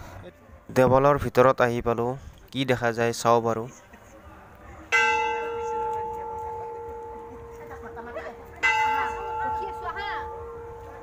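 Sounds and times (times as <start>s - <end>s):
metal bell ringing: 5.0s - 11.0s.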